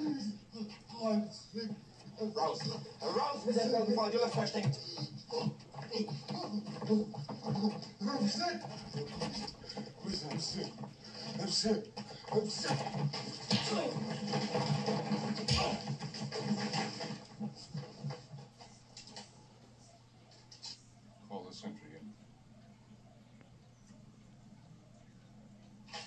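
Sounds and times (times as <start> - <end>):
men grunting and shouting: 0.0 - 11.6, 15.2 - 16.2.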